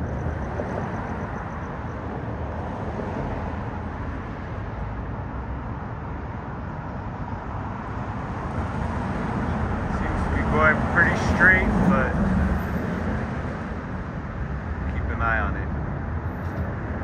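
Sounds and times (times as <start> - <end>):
outdoor rushing background noise: 0.0 - 17.0.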